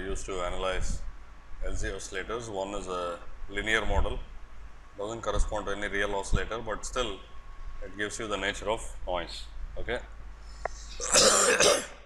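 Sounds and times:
man coughing: 0:11.0 - 0:12.0.

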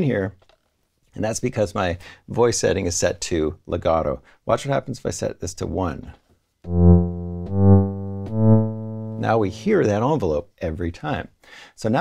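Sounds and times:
low synthesizer notes: 0:06.7 - 0:09.8.

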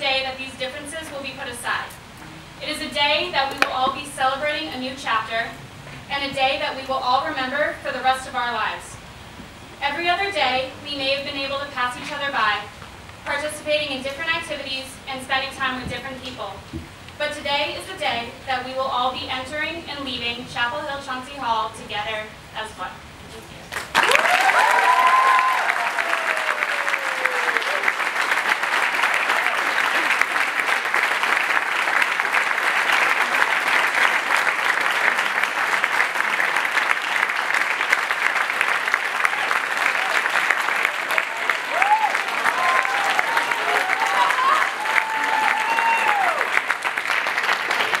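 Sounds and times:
audience applauding: 0:23.7 - 0:48.0
whoops and cheers: 0:24.0 - 0:28.0, 0:40.9 - 0:46.6.

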